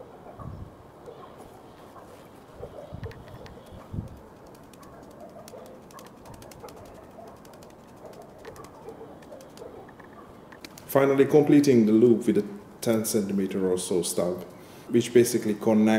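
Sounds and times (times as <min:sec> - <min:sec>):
dove cooing: 0:00.0 - 0:10.4.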